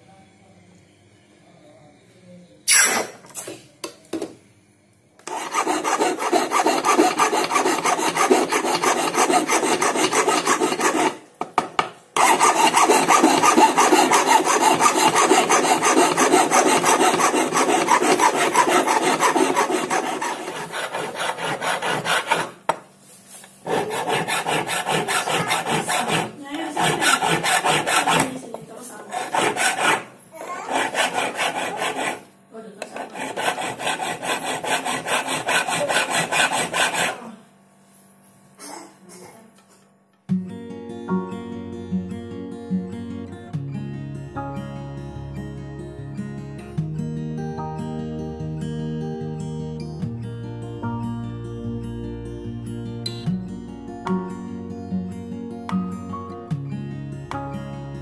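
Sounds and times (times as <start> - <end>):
file scraping metal: 5.2 - 11.2, 12.2 - 22.8, 23.6 - 37.4.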